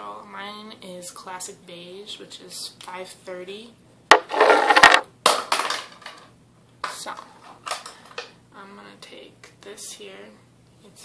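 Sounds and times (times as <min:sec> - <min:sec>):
small containers clattering: 0:04.1 - 0:06.2.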